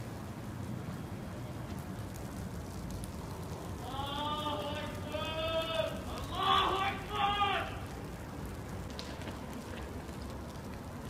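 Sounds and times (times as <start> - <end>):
background hiss: 0.0 - 11.0
person shouting long calls: 3.8 - 7.9.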